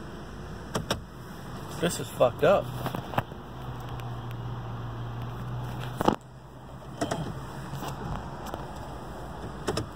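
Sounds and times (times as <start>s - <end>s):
low hum inside car cabin: 0.0s - 9.9s.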